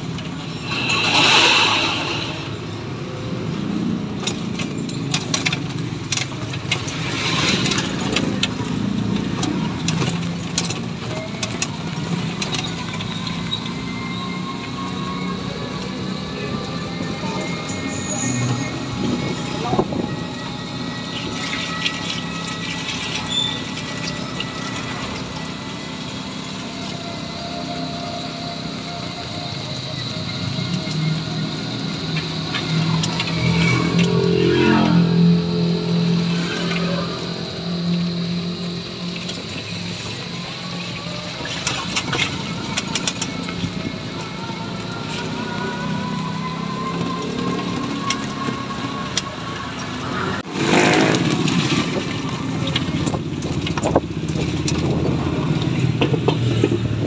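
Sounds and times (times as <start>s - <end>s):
tyre noise on wet street: 0.0s - 57.0s
high motor whine: 8.8s - 57.0s.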